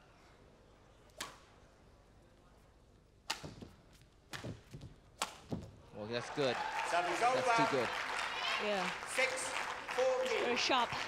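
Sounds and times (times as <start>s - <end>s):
racket striking shuttlecock: 3.2s - 5.7s
footwork thuds on court: 3.3s - 5.8s.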